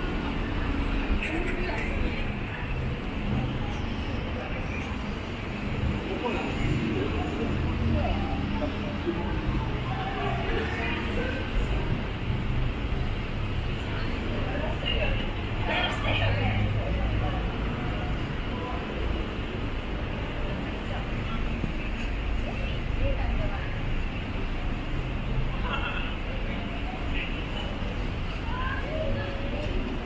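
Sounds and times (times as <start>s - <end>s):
passers-by talking: 0.0s - 30.0s
road traffic rumble: 0.0s - 30.0s.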